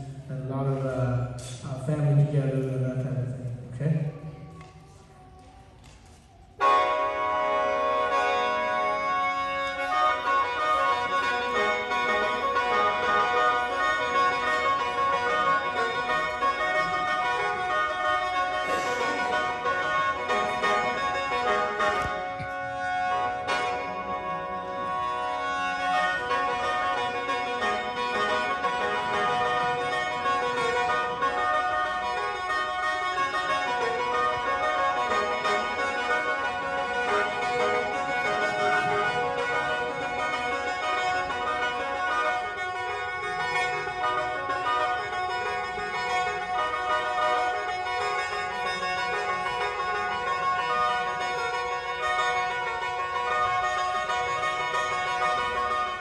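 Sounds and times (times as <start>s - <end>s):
bamboo mouth organ playing: 6.5s - 56.0s.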